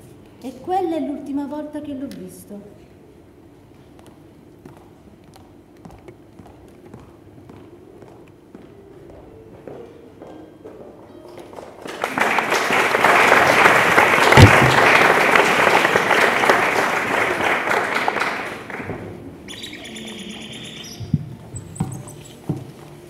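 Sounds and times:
audience applause: 11.8 - 19.7
high chirping: 19.4 - 22.4.

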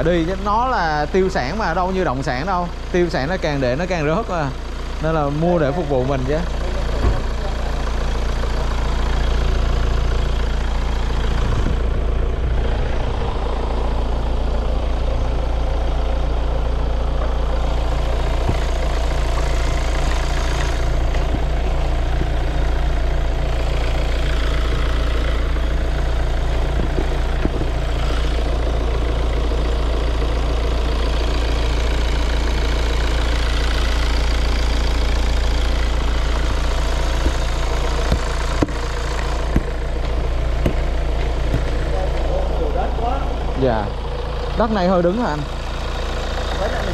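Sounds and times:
diesel engine idling: 0.0 - 46.9.

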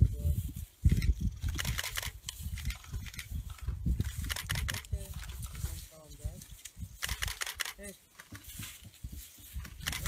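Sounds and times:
camera shutters clicking: 0.9 - 4.9, 7.0 - 8.4, 9.8 - 10.0.

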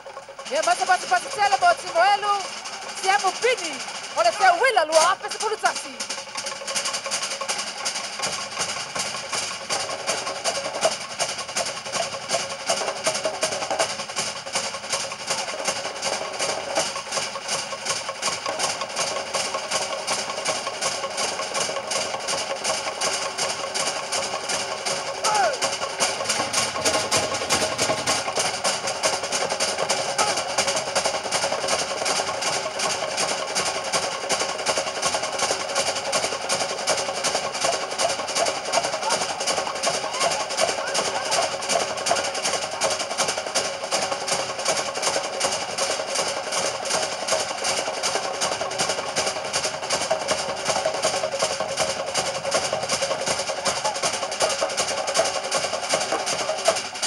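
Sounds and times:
fast drumming on log drums: 0.0 - 57.0.

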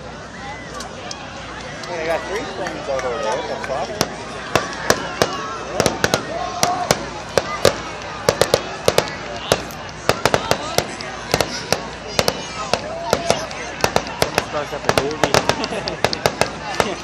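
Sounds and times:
fireworks popping and cracking: 3.8 - 17.0.

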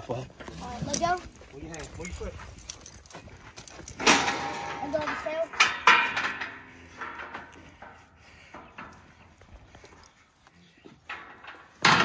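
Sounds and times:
steel chute rattling and knocking: 3.8 - 9.3, 11.0 - 12.0
loud metal clang: 4.0 - 7.3.

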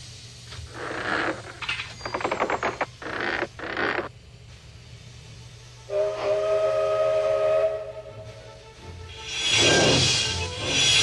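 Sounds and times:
steam locomotive whistle: 5.8 - 11.0.

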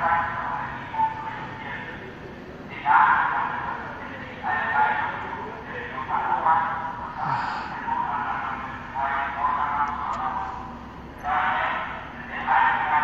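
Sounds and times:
loudspeaker spoken warning announcement: 0.0 - 13.0.

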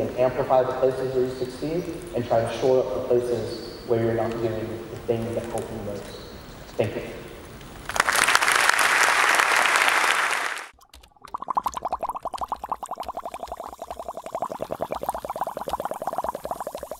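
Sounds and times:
audience applauding: 7.8 - 10.8.

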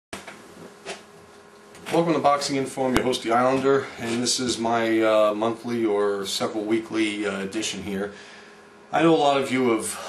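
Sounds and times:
low electrical buzz: 0.2 - 10.0
man speaking: 1.9 - 8.2, 8.9 - 10.0.

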